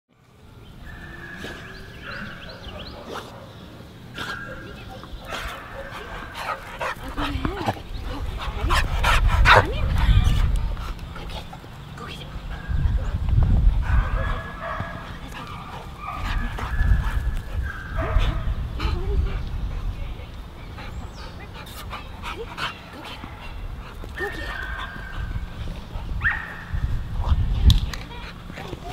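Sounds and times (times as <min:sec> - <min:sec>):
dog barking: 0:00.9 - 0:03.5, 0:13.9 - 0:15.0, 0:16.0 - 0:18.5, 0:26.2 - 0:26.6.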